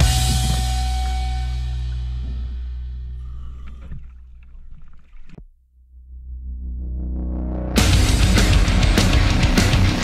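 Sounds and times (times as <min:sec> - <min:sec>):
boat engine rumble: 0:00.0 - 0:06.4
water at sea surface: 0:03.1 - 0:05.6.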